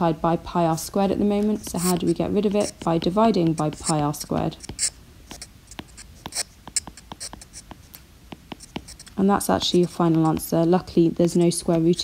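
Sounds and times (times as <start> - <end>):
stylus tapping on glass screen: 3.4 - 9.1.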